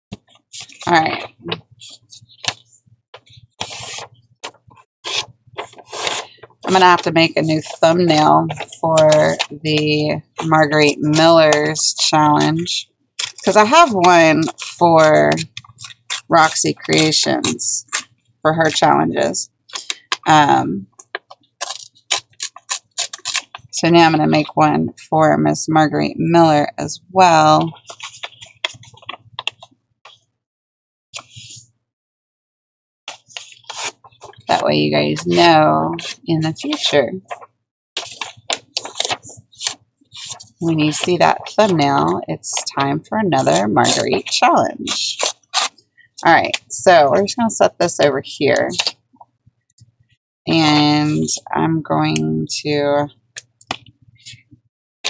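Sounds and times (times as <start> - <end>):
paper sheets rustling and sliding: 0.2 - 11.8, 27.3 - 30.2, 31.2 - 31.7, 33.1 - 42.7.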